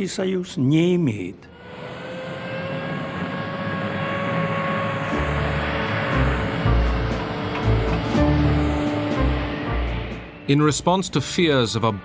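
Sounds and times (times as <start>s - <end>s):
jet engines whining: 0.0s - 12.0s
low pulsing music bass: 5.1s - 11.6s.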